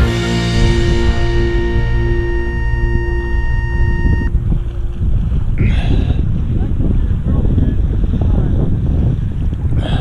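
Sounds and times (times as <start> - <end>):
background music: 0.0 - 4.3
wind rumble on microphone: 0.4 - 10.0.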